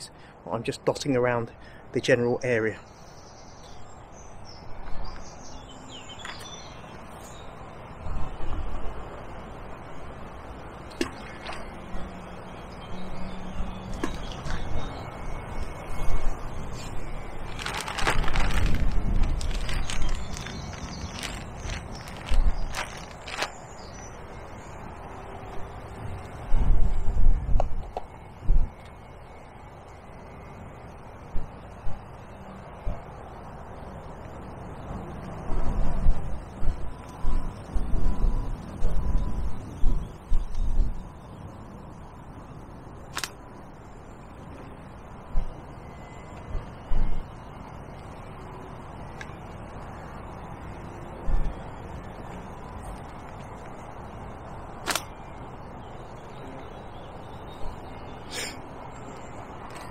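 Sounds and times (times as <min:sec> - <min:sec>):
wind buffeting microphone: 0:13.5 - 0:25.0, 0:25.6 - 0:28.8, 0:35.3 - 0:41.1.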